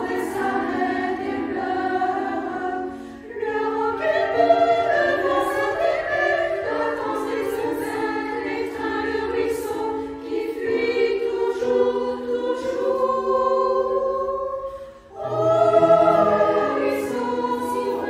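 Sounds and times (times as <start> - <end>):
women's choir singing: 0.0 - 18.0.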